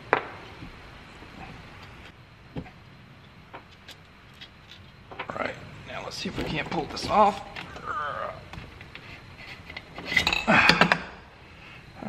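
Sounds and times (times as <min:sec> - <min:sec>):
metal clinking and clattering: 0:08.5 - 0:11.1.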